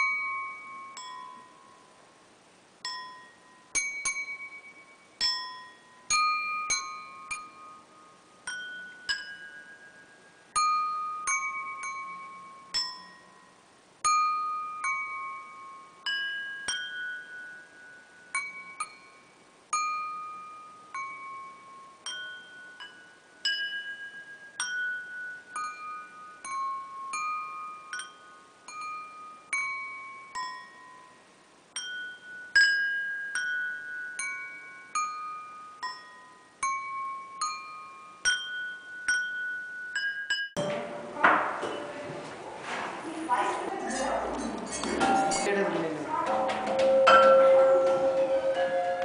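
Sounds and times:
glass clinking and pinging: 0.0s - 1.9s, 2.8s - 42.0s, 43.9s - 45.6s, 46.2s - 49.0s
voices: 41.1s - 49.0s
chime tones ringing: 46.4s - 49.0s.

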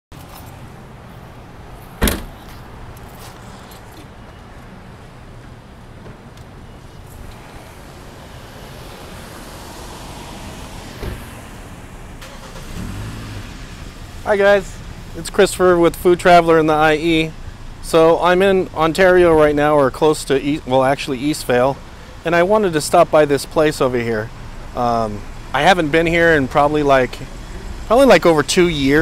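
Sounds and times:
car and traffic noise: 0.1s - 29.0s.

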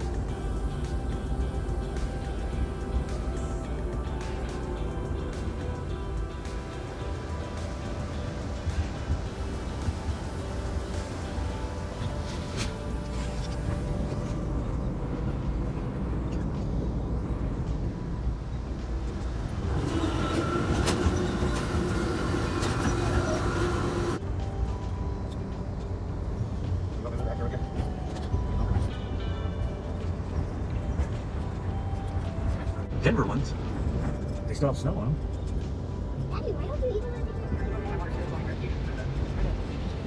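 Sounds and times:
train running rumble: 0.0s - 40.0s.

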